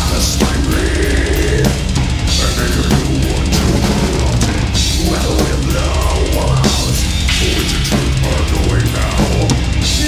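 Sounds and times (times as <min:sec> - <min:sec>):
death metal band playing: 0:00.0 - 0:10.0
distorted electric guitars: 0:00.0 - 0:10.0
rapid bass drum strokes: 0:00.0 - 0:10.0.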